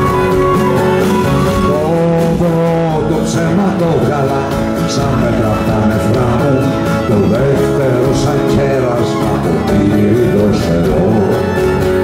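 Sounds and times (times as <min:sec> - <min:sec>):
acoustic guitar strumming: 0:00.0 - 0:12.0
low bass notes: 0:00.0 - 0:12.0
sliding melody line: 0:00.0 - 0:12.0.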